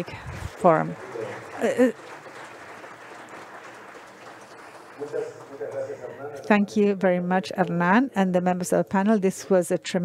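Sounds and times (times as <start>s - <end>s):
audience applauding in a hall: 0.0s - 6.8s.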